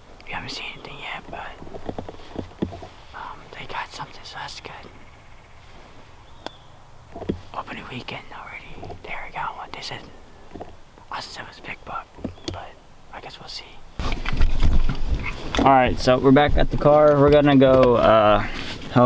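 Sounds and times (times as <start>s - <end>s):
person whispering: 0.2s - 1.6s, 3.1s - 5.0s, 7.5s - 10.2s, 11.1s - 13.8s.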